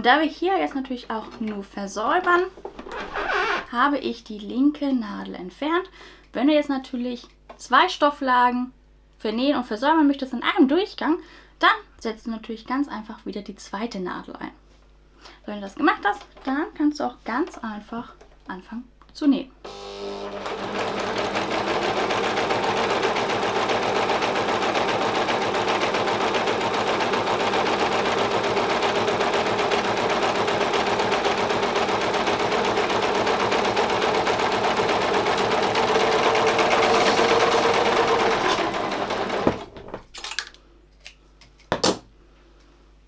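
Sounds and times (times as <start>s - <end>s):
overlock machine running: 19.7s - 40.0s.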